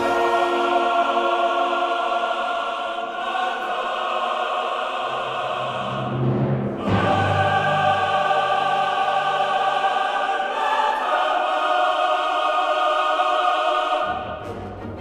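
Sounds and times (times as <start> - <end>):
choir singing long chords: 0.0 - 15.0
quiet orchestral music: 0.0 - 15.0.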